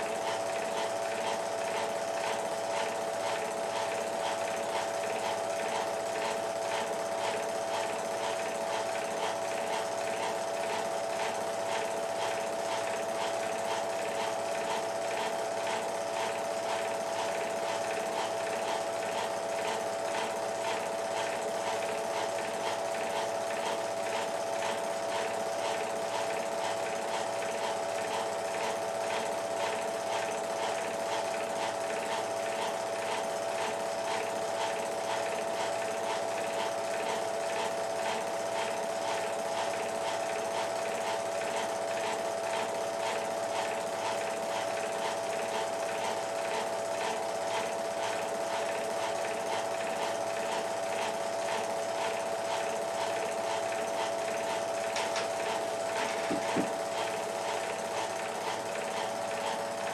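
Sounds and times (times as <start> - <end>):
film projector running: 0.0 - 59.9.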